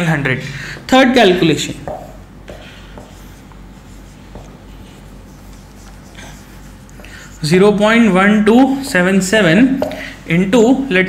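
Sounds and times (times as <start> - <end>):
steady low hum: 0.0 - 11.0
marker pen writing on whiteboard: 1.8 - 7.8.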